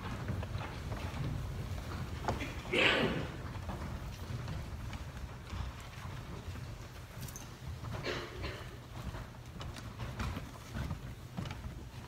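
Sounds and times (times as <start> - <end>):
faint footsteps: 0.0 - 12.0.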